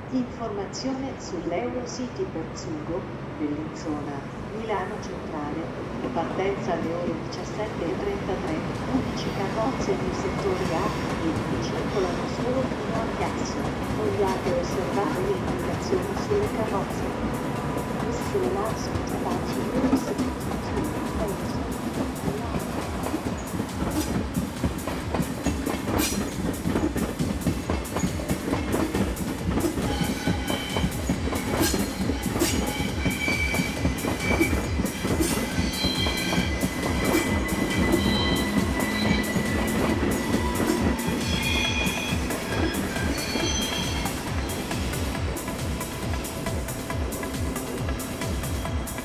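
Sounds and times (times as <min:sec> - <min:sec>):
train wheels clattering over switches: 0:23.1 - 0:43.2
wheel flanges squealing: 0:25.4 - 0:49.0.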